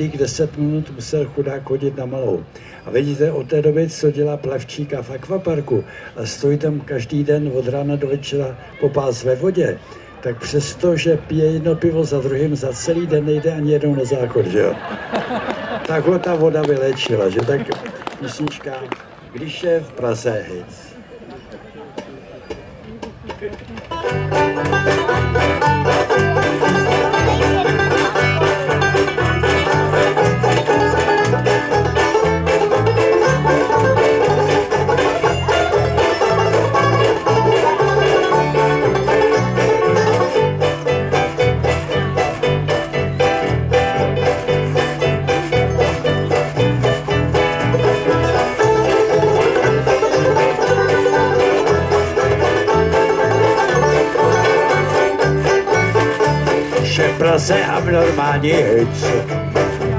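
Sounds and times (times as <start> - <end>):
banjos strumming: 22.0 - 59.9
washboard rhythm: 23.1 - 59.9
electric bass guitar: 23.9 - 59.9.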